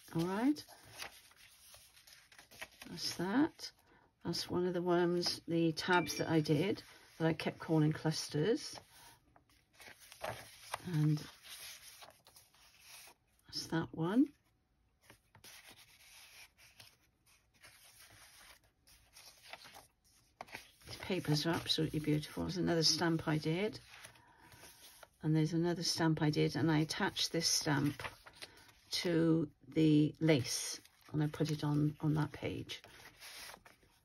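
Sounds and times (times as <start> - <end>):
paper pages turning: 0.0 - 3.2, 8.8 - 13.2, 15.0 - 25.2, 27.0 - 28.9, 30.4 - 34.0.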